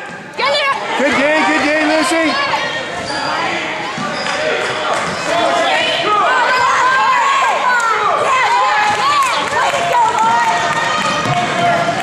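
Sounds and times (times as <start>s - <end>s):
sneakers squeaking: 0.0s - 7.0s.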